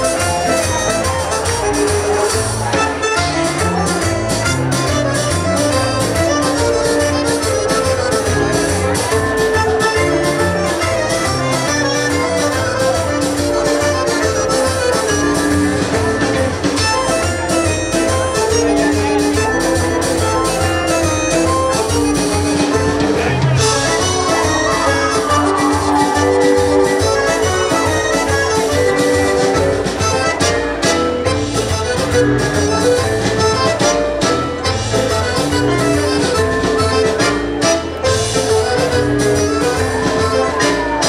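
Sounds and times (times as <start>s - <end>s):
accordion: 0.0s - 41.0s
banjo: 0.0s - 41.0s
drums: 0.0s - 41.0s
guitar: 0.0s - 41.0s
upright bass: 0.0s - 41.0s.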